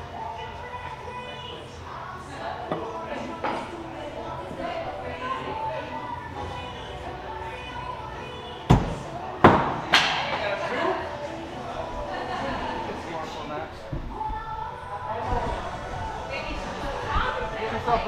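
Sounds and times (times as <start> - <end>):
people talking in background: 0.0 - 18.0.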